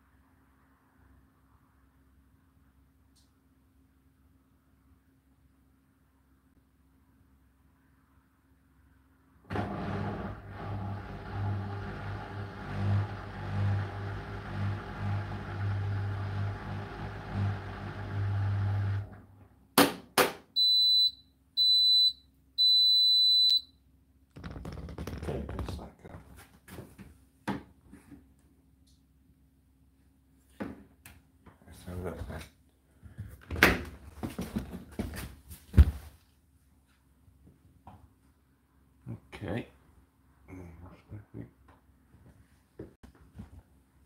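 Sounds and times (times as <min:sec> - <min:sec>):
washing machine motor hum: 0:09.5 - 0:19.3
high beeps: 0:20.6 - 0:23.7.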